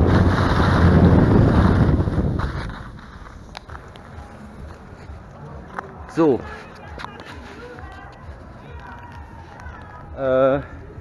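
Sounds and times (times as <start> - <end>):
outdoor background noise: 0.0 - 11.0
faint distant voices: 3.8 - 11.0.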